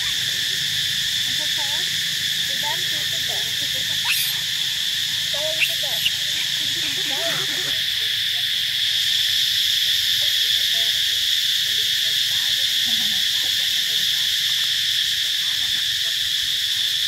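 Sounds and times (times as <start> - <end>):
faint voices: 0.0 - 8.9, 10.2 - 16.3
shrill insect chorus: 0.0 - 17.0.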